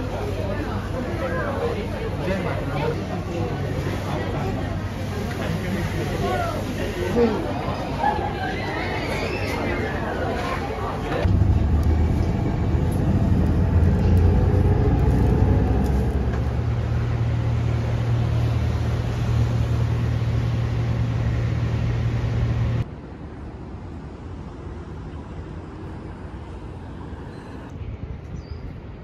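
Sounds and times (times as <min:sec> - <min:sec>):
street traffic noise: 0:00.0 - 0:29.0
vehicle engine humming: 0:11.1 - 0:22.9.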